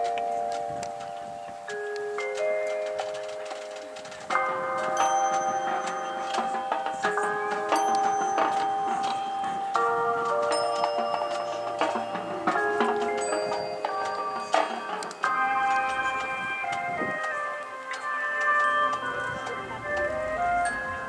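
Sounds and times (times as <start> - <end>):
marching band sustained chords: 0.0 - 21.0
struck ringing notes: 0.0 - 21.0.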